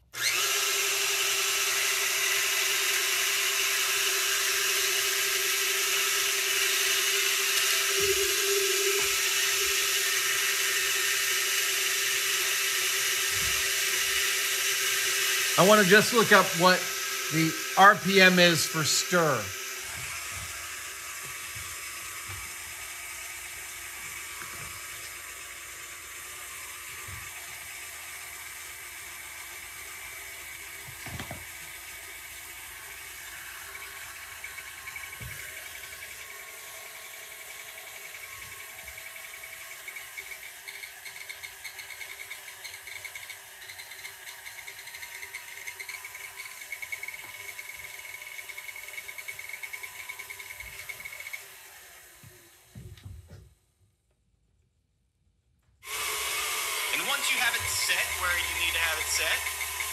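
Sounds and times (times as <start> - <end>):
stand mixer motor running: 0.0 - 52.8, 55.8 - 59.9.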